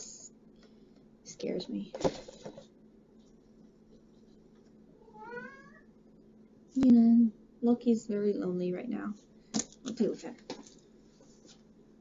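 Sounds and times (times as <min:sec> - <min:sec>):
cat meowing: 0:05.0 - 0:05.9.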